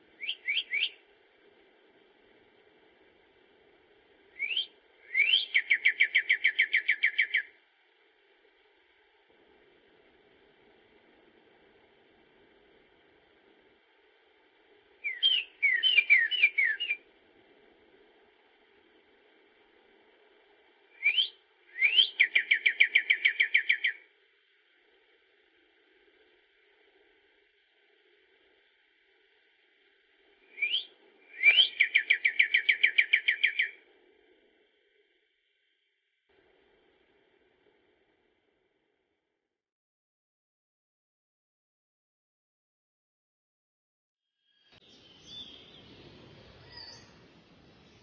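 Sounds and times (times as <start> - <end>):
bird singing: 0.1 - 1.0, 4.3 - 7.6, 15.0 - 17.1, 20.9 - 24.1, 30.4 - 33.9, 44.4 - 48.0
songbird whistling and trilling: 0.2 - 1.0, 4.3 - 7.5, 15.0 - 17.0, 20.9 - 24.0, 30.4 - 33.8, 44.8 - 46.0, 46.6 - 47.2.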